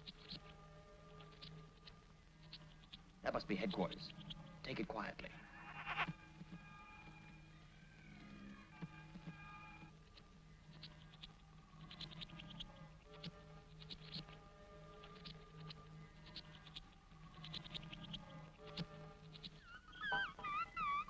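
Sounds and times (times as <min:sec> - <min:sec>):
organ-like electronic tones: 0:19.0 - 0:21.0.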